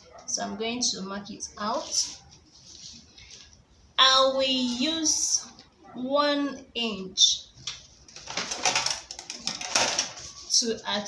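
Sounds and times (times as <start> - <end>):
paper rustling: 1.7 - 3.6.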